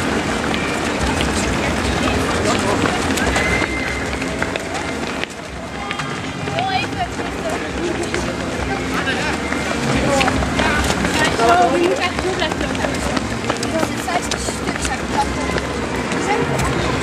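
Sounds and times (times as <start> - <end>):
runners' footsteps on asphalt: 0.0 - 17.0
voices: 0.0 - 17.0.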